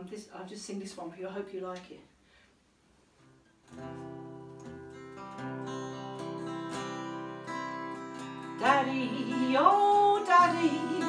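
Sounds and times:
acoustic guitar strumming chords: 3.7s - 11.0s.

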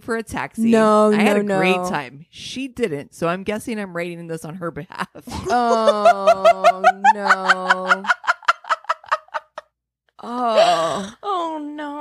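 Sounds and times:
woman laughing: 5.3s - 9.7s.

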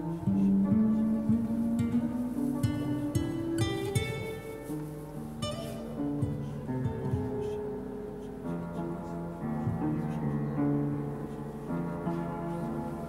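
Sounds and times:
upright piano notes: 0.0s - 13.0s
plucked acoustic guitar: 1.3s - 4.6s.

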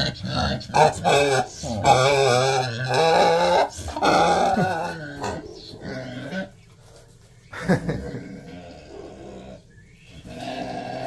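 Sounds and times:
pig grunting softly: 7.9s - 11.0s.

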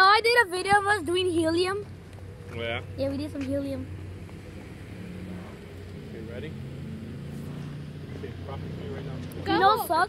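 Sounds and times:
distant voices: 0.0s - 10.0s
vehicle engine running at low revs: 0.2s - 10.0s.

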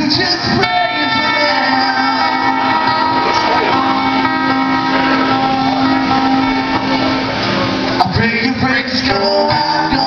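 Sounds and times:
acoustic guitars playing chords: 0.0s - 10.0s.

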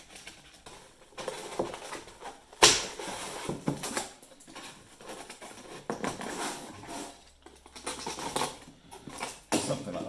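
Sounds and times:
foam tile scraping and rustling: 0.0s - 10.0s.

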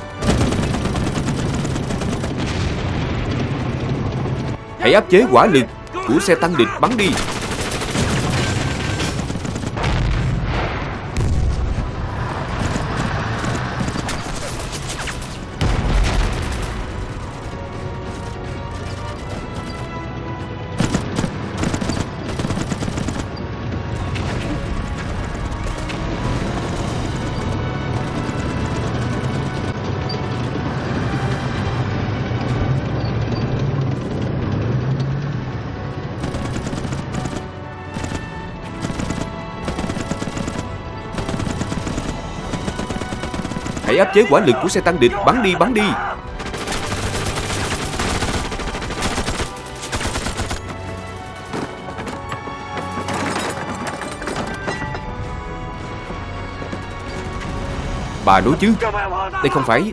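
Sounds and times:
rifle and machine-gun fire: 0.0s - 4.5s, 7.0s - 11.5s, 12.3s - 19.8s, 20.8s - 23.4s, 24.2s - 31.6s, 36.1s - 51.4s
dramatic film score: 0.0s - 59.9s
heavy explosion: 2.3s - 4.3s, 9.8s - 13.4s, 15.6s - 17.1s.

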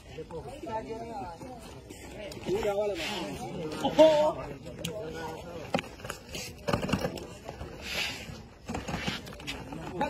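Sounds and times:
low voices: 0.0s - 10.0s.

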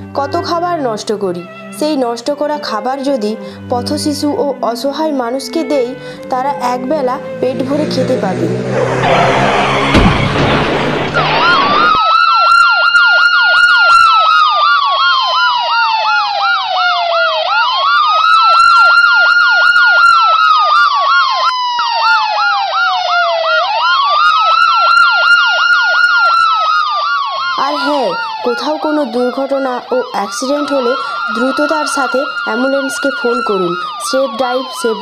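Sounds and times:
ambulance siren wailing: 0.0s - 35.0s
burst of noise: 8.7s - 12.0s.

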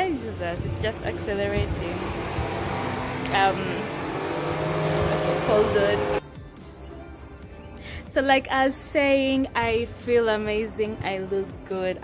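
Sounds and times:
car engine accelerating: 0.4s - 6.2s.

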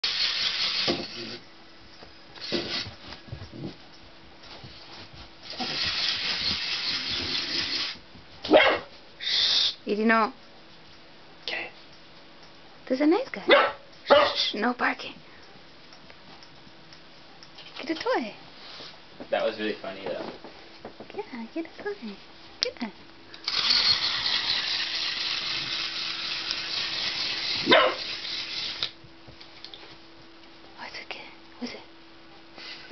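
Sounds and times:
clockwork toy whirring: 0.0s - 1.4s, 5.5s - 8.0s, 23.4s - 28.9s
puppy barking: 8.5s - 8.9s, 13.5s - 14.4s, 27.6s - 28.1s.

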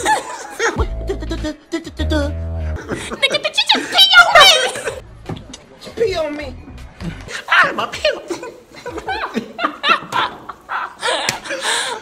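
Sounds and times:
high wavering vocal sound: 0.8s - 2.9s.

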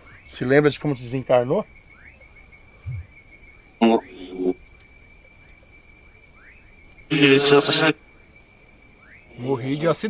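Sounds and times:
crickets trilling: 0.0s - 10.0s
faint insect chirps: 0.0s - 10.0s
short voice-like burst: 7.1s - 8.0s.

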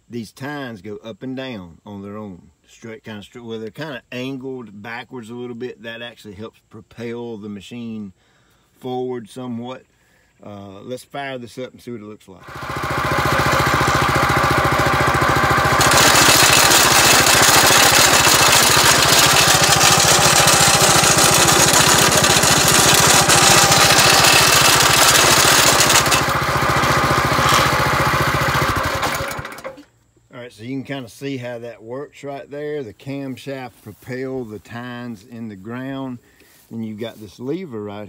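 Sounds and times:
small engine with steady clatter: 12.4s - 29.9s.

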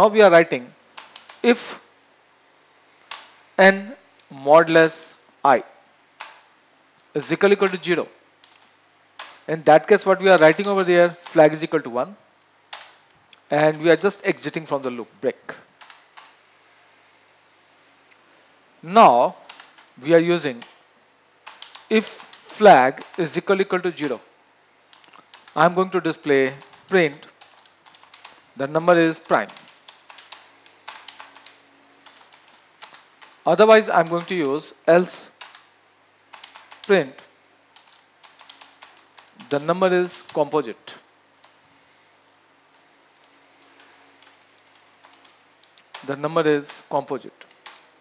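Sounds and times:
man speaking: 0.0s - 0.7s, 1.4s - 1.8s, 3.6s - 5.7s, 7.2s - 8.1s, 9.5s - 12.2s, 13.5s - 15.6s, 18.8s - 19.4s, 20.0s - 20.7s, 21.9s - 24.2s, 25.6s - 27.3s, 28.6s - 29.6s, 33.5s - 35.3s, 36.9s - 37.3s, 39.4s - 41.0s, 46.0s - 47.4s
room hiss: 0.0s - 48.0s
computer keyboard typing: 1.0s - 1.5s, 8.4s - 9.5s, 10.4s - 11.5s, 12.7s - 13.0s, 15.8s - 16.4s, 19.5s - 19.9s, 21.4s - 23.4s, 24.9s - 25.7s, 26.5s - 34.6s, 35.3s - 35.7s, 36.3s - 37.0s, 37.8s - 40.4s, 43.2s - 48.0s.

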